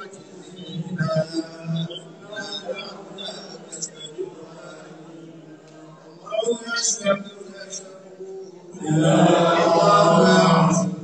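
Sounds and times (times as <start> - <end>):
man chanting a held note: 8.8 - 11.0.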